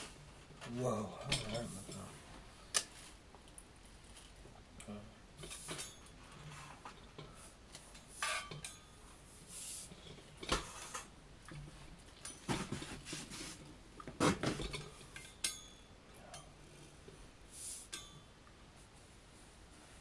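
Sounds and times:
objects knocking and rubbing: 9.8 - 15.0.

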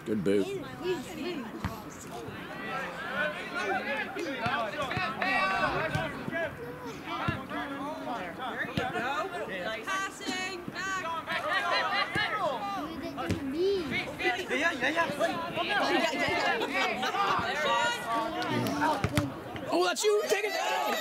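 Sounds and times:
voices calling and chattering: 0.0 - 21.0.

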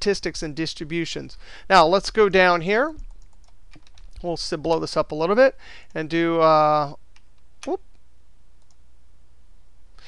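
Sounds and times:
computer mouse clicks: 3.0 - 4.2, 8.6 - 8.8.

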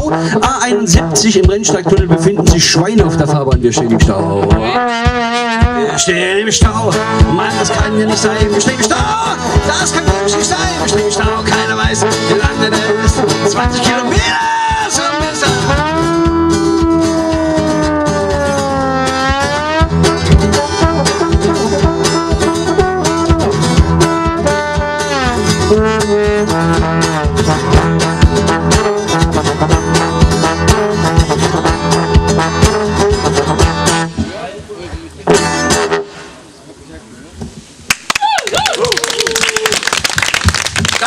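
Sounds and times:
strummed acoustic guitar: 0.0 - 34.4, 35.2 - 36.2
trombone sliding notes: 0.0 - 36.5.

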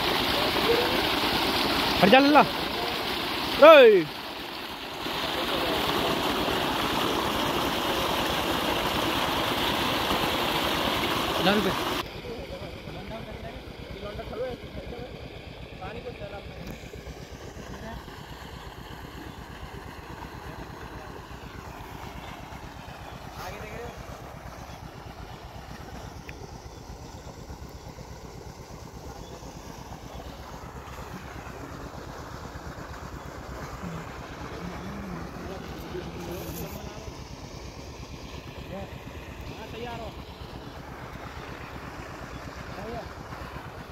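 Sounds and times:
distant diesel pump engine running: 0.0 - 43.9.

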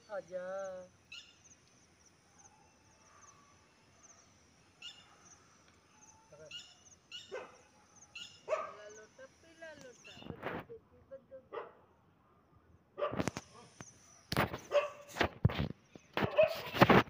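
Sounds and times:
small birds chirping: 0.0 - 17.0
dog barks: 7.2 - 8.9, 11.5 - 11.9, 13.0 - 13.8, 14.6 - 15.1, 16.2 - 16.8.

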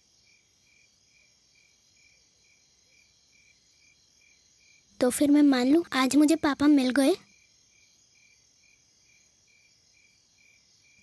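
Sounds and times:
cricket chirping: 0.0 - 11.0
low background hiss: 0.0 - 11.0.

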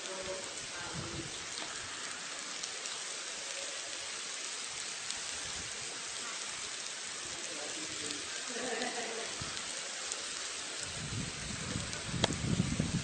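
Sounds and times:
ants steady hiss: 0.0 - 13.0.

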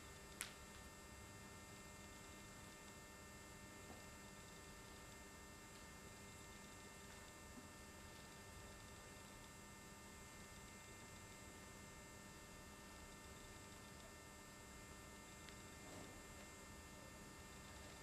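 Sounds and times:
faint electrical hum and hiss: 0.0 - 18.0.

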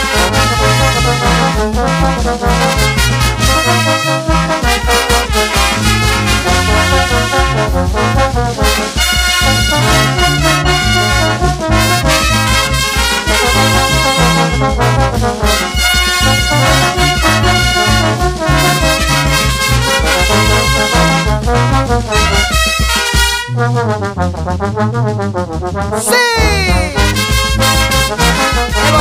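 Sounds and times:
sousaphone bass notes: 0.0 - 5.0, 9.4 - 29.0
steady drum beat: 0.0 - 24.7, 25.5 - 29.0
trumpets and trombones: 0.0 - 29.0.

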